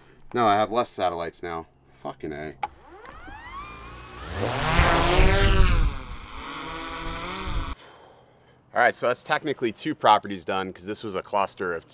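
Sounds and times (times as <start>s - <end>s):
drone motors whining: 2.7s - 7.8s.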